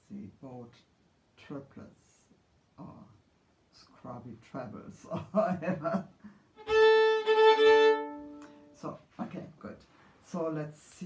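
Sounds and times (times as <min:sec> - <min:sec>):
violin bowed phrase: 0:06.6 - 0:08.9.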